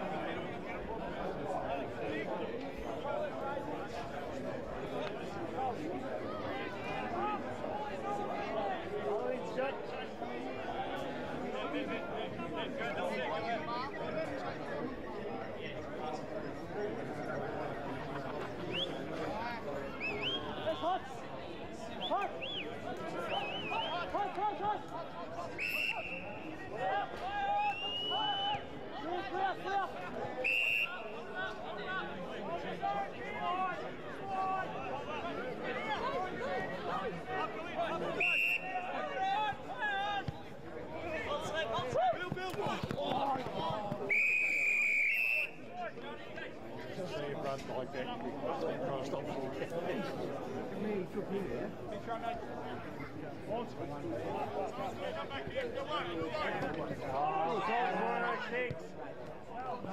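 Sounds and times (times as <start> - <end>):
spectators chatting: 0.0 - 59.9
pea whistle blasts: 44.1 - 45.6.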